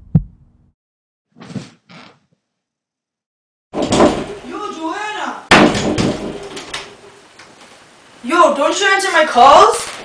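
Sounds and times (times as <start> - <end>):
door banging: 3.8 - 4.6, 5.5 - 6.9
person's voice: 8.2 - 9.9.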